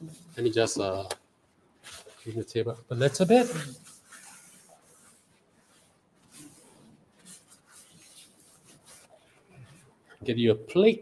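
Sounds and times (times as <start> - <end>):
soft handling noises: 0.0 - 10.8
napkin rubbing a countertop: 1.8 - 9.9.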